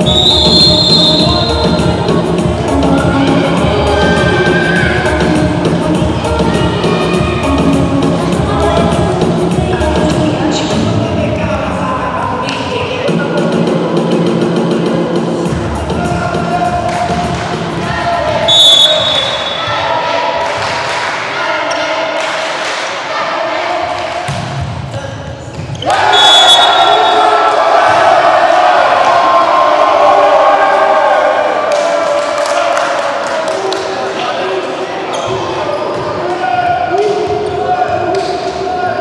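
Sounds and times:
referee whistle: 0.0 - 1.9, 18.5 - 19.8, 25.8 - 27.3
music: 0.0 - 18.9
crowd voices: 0.0 - 39.0.

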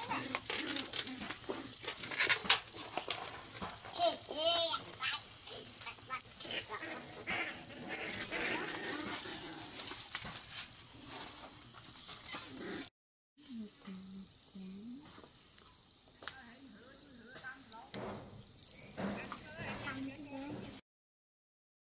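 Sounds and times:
children calling and chattering: 3.6 - 9.1.

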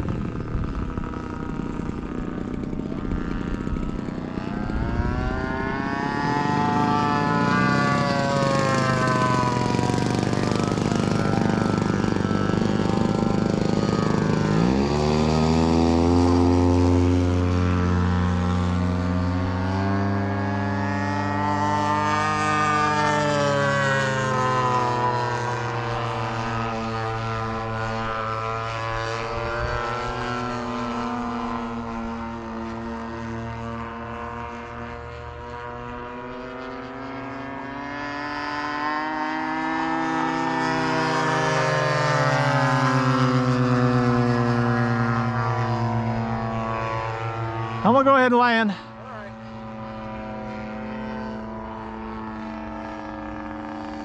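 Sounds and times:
model airplane engine flying overhead: 0.0 - 54.0.

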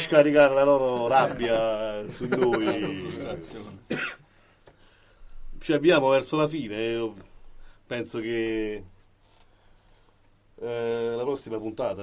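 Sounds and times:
person speaking: 0.0 - 3.9
person coughing: 3.9 - 4.3.

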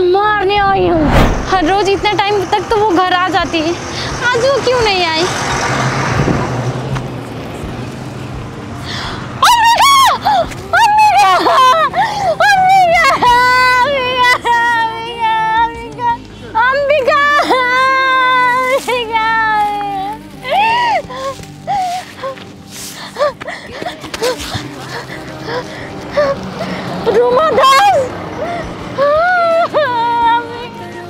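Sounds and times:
faint musical accompaniment: 0.0 - 31.0
woman sobbing and wailing: 8.9 - 30.8.

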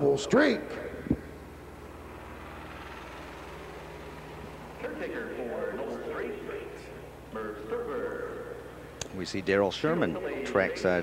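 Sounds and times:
low background hum and hiss: 0.0 - 11.0.

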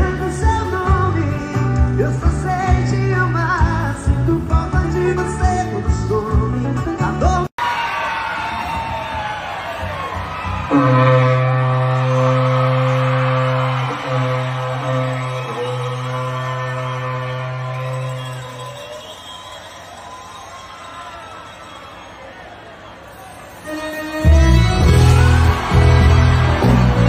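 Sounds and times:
crowd noise: 0.0 - 27.0
ox horn long low note: 10.7 - 18.8, 23.6 - 27.0.

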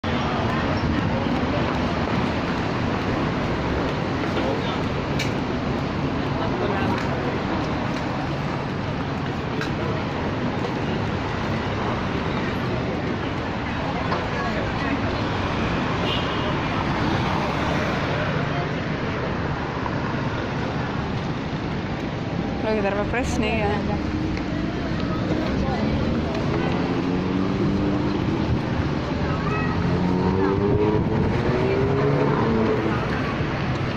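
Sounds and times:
people's voices: 0.0 - 33.9
road traffic: 0.0 - 33.9.

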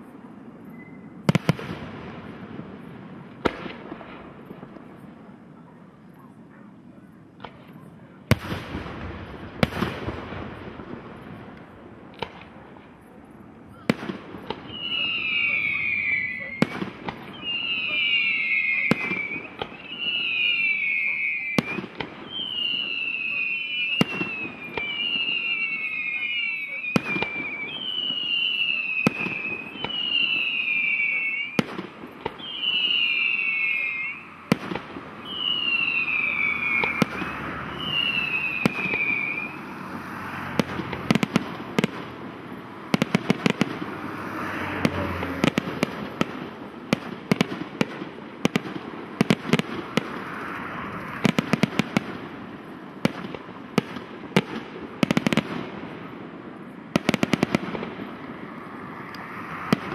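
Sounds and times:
firework crackling: 0.0 - 5.6, 7.2 - 59.9
firework bangs: 0.0 - 59.9
whistling fireworks: 0.0 - 59.9.

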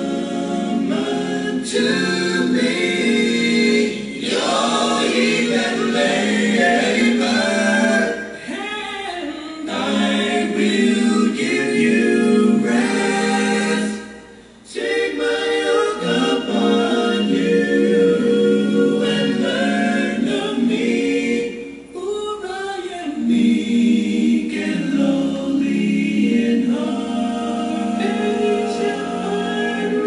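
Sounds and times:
choir singing a hymn: 0.0 - 8.6, 9.6 - 22.0, 22.9 - 30.0.

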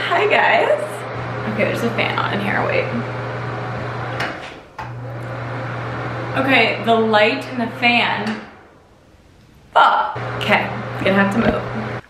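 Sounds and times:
fan humming: 0.0 - 12.0.

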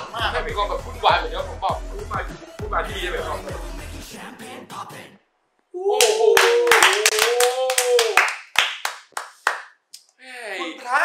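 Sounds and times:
person cheering: 5.7 - 8.4
hands clapping: 6.0 - 10.1.

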